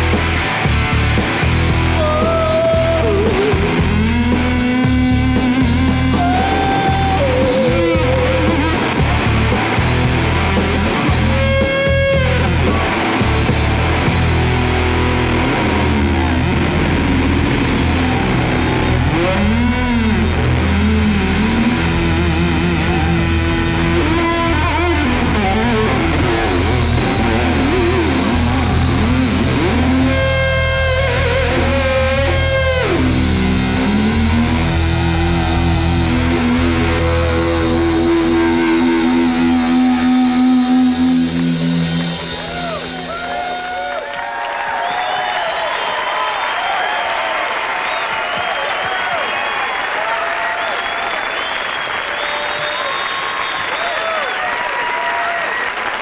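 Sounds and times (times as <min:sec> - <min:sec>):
electric guitar lead notes: 0:00.0 - 0:43.7
live rock band playing: 0:00.0 - 0:44.3.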